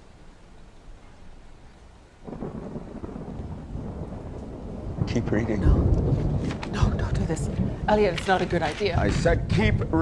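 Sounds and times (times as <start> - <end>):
deep rolling rumble: 2.3 - 10.0.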